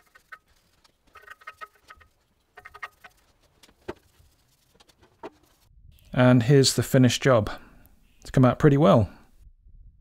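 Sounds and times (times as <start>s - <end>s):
paintbrush scratching on steel: 0.0s - 5.6s.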